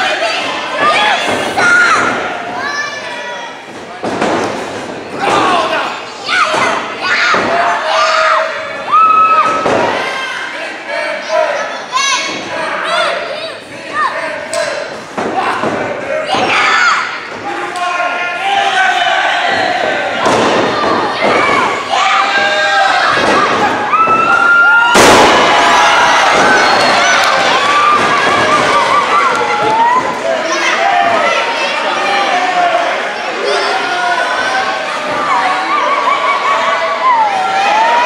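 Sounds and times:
crowd shouting and yelling: 0.0 - 38.0.

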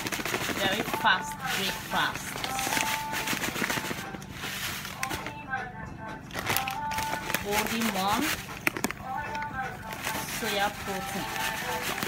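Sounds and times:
sharp crackles: 0.0 - 5.2, 6.4 - 12.0
plastic sachet crinkling: 0.0 - 5.4, 6.3 - 12.0
person speaking: 0.5 - 5.5, 6.6 - 12.0.

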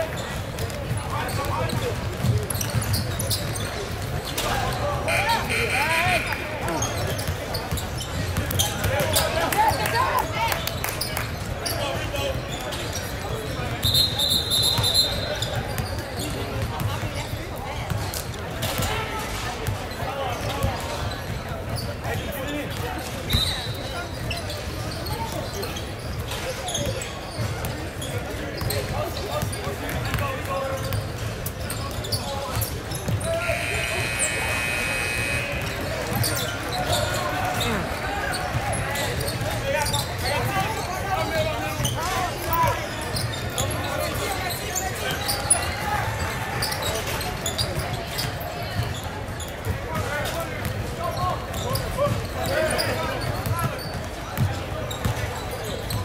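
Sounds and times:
sneakers squeaking: 0.0 - 56.0
voices echoing in gym: 0.0 - 56.0
referee whistle: 5.0 - 7.0, 13.8 - 15.3, 33.2 - 37.0.

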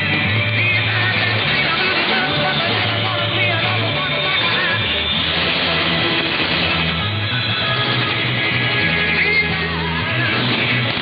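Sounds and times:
muffled music over radio: 0.0 - 11.0.

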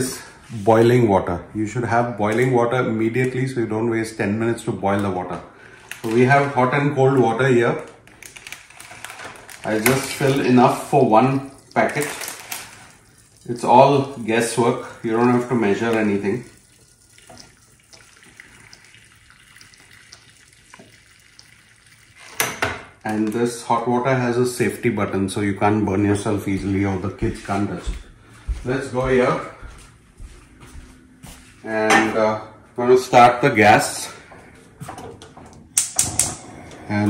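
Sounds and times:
water pouring into metal pan: 9.6 - 22.4.

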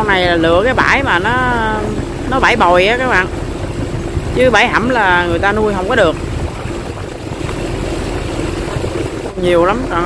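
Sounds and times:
boat engine droning: 0.0 - 10.0
water rushing: 0.0 - 10.0.

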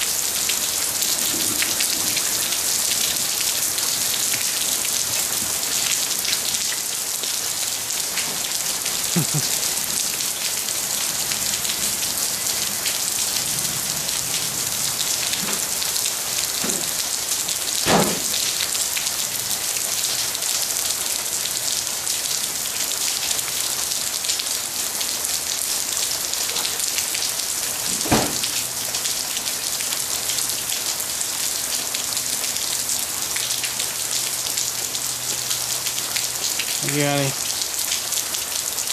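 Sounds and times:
heavy rain on driveway: 0.0 - 38.9.

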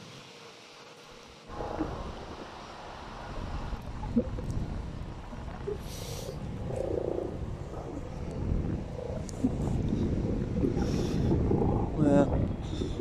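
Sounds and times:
wind rumbling on microphone: 1.5 - 13.0.

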